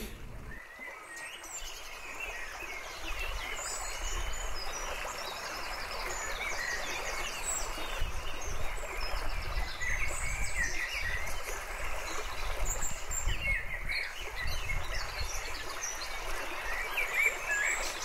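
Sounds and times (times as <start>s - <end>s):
running stream: 0.0s - 18.0s
small birds chirping: 0.0s - 18.0s.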